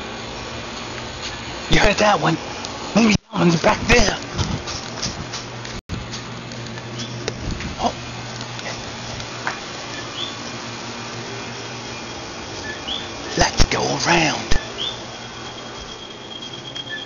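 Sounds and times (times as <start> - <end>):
steady low hum: 0.0 - 17.0
high chirps sliding upward: 14.6 - 17.0.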